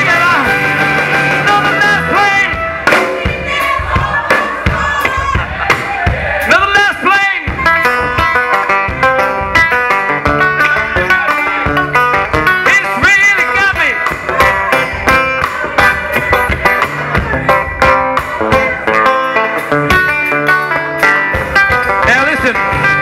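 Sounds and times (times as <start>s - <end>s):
electric guitar: 0.0s - 3.4s, 7.4s - 23.0s
steady drum beat: 0.0s - 23.0s
acoustic guitar: 7.4s - 23.0s
banjo: 7.6s - 23.0s.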